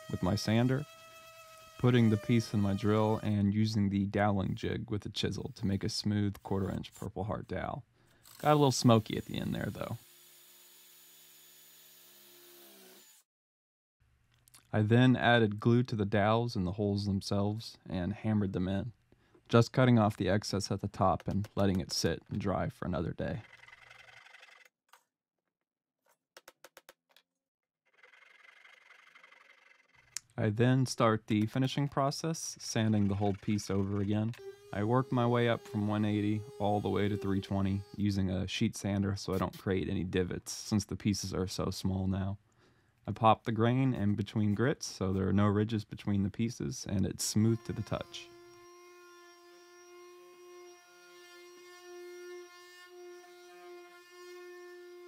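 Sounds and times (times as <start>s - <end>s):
pull saw rasping through wood: 0.0s - 3.4s.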